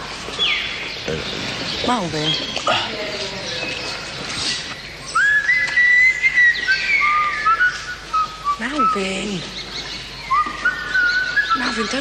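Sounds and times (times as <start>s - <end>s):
man whistling a slow tune: 5.2s - 8.6s.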